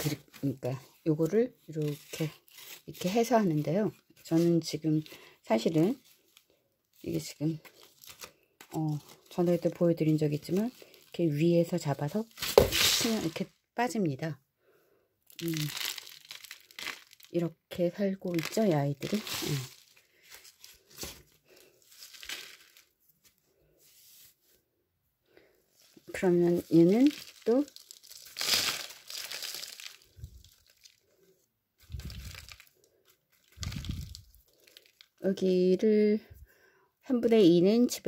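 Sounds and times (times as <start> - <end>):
potting mix crumbling into pot: 15.4 - 17.4
soil and roots crunching and rustling: 15.4 - 17.5, 18.1 - 22.9, 25.9 - 31.0, 31.8 - 32.8, 33.4 - 35.2.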